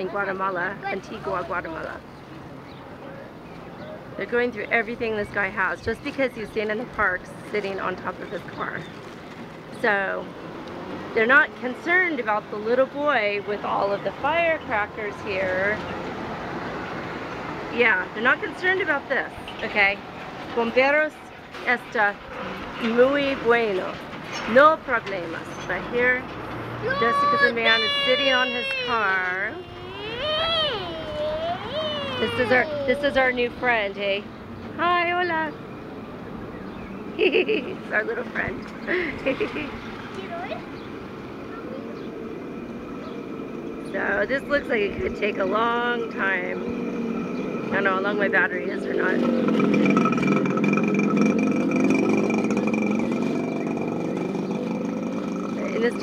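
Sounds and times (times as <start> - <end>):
vehicle engine rumble: 0.0 - 56.0
wavering drawn-out voice: 26.8 - 33.4.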